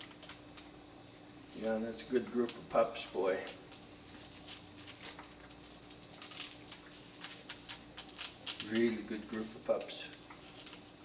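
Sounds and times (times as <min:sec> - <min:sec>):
puppies shuffling and nursing: 0:00.0 - 0:11.0.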